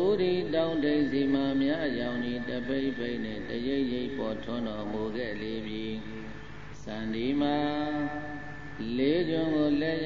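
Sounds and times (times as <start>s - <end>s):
man chanting: 0.0s - 10.0s.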